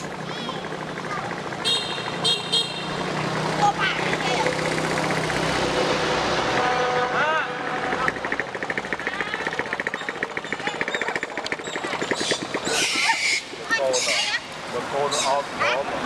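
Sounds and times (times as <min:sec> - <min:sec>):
motor vehicle passing: 0:00.0 - 0:16.0.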